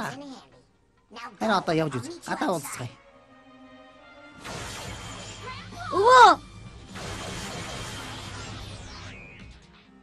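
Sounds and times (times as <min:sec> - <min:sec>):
quiet background music: 0:00.0 - 0:10.0
crash sound effect: 0:04.4 - 0:05.6, 0:06.9 - 0:09.3.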